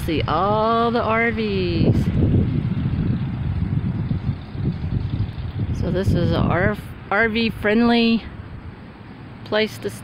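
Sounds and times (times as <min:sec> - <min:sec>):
wind buffeting microphone: 0:00.0 - 0:09.0.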